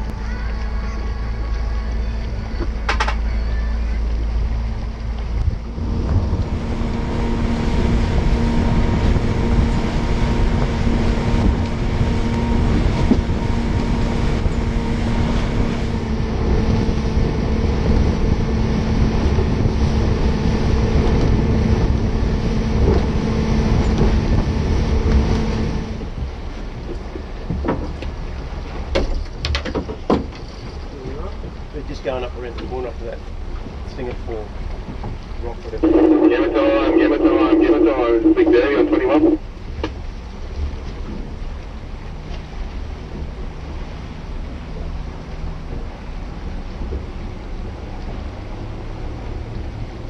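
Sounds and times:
rushing wind: 0:00.0 - 0:32.3
outboard motor running: 0:00.0 - 0:50.0
water noise: 0:00.0 - 0:50.0.

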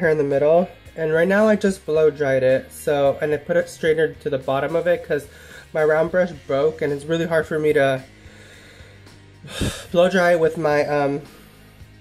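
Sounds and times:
woman's sharp intake of breath: 0:08.5 - 0:09.9.

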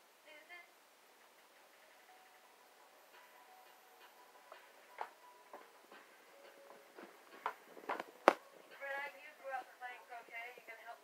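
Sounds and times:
faint steady tones: 0:00.0 - 0:11.0.

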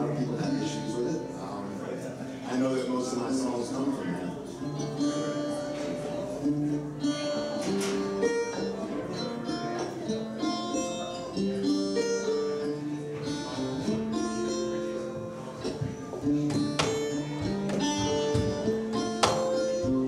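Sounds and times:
acoustic guitar picking: 0:00.0 - 0:20.0.

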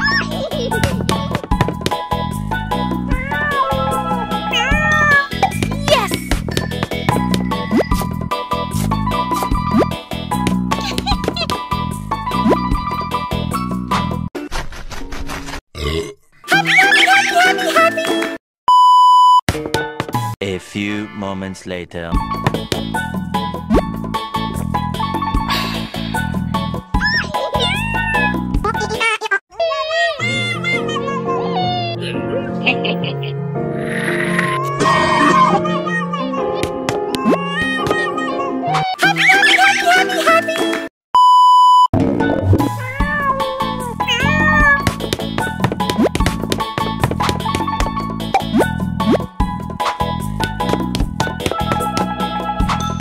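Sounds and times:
bouncy background music: 0:00.0 - 0:14.3, 0:19.5 - 0:29.1, 0:35.1 - 0:40.9, 0:42.2 - 0:53.0
cat meowing: 0:42.8 - 0:44.9.

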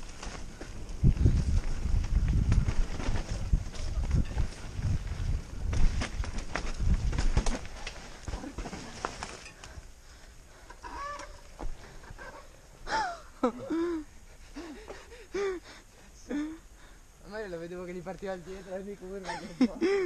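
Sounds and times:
mountain bike rattling over dirt: 0:00.0 - 0:09.8.

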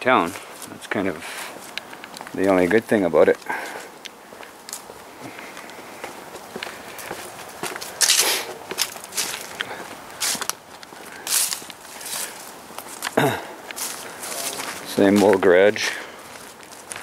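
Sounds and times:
footsteps on grass and gravel: 0:00.0 - 0:17.0.

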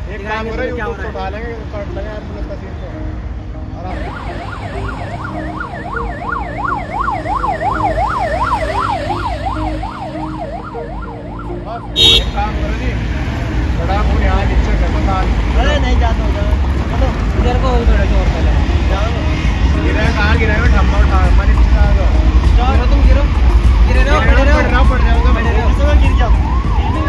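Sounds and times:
low traffic rumble: 0:00.0 - 0:27.0
ambulance siren yelping: 0:03.9 - 0:12.2, 0:24.2 - 0:27.0.

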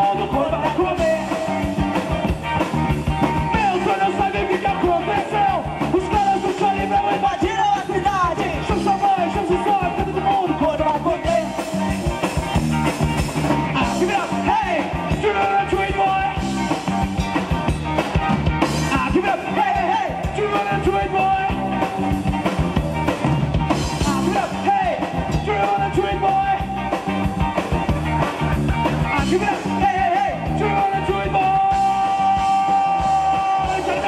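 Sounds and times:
man singing lead vocals: 0:00.0 - 0:02.6, 0:03.2 - 0:12.5, 0:13.5 - 0:17.1, 0:18.6 - 0:22.6, 0:23.7 - 0:27.4, 0:28.8 - 0:34.0
drum kit: 0:00.0 - 0:34.0
electric bass: 0:00.0 - 0:34.0
electric guitar: 0:00.0 - 0:34.0.

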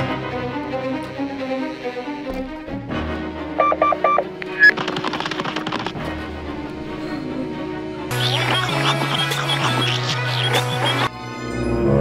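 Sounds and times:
background music: 0:00.0 - 0:12.0
electronic doorbell beeps: 0:03.6 - 0:04.7
rapid rattle of clicks: 0:04.7 - 0:06.1.

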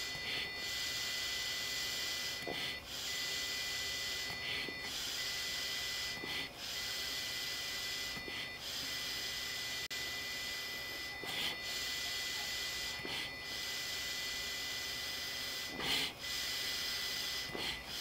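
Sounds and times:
man blowing into breath tester: 0:08.0 - 0:08.6, 0:15.6 - 0:18.0.

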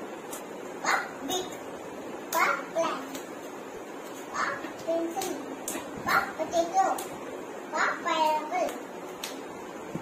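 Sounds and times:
young child speaking: 0:00.8 - 0:01.6, 0:02.3 - 0:03.2, 0:04.3 - 0:08.9.

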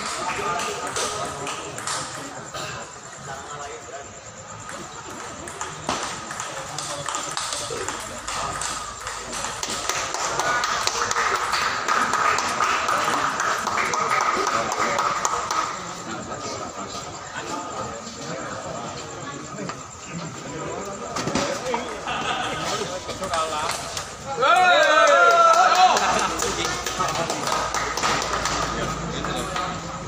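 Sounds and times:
table tennis balls clicking: 0:00.0 - 0:02.5, 0:04.6 - 0:15.8
spectators' voices: 0:00.0 - 0:30.0.

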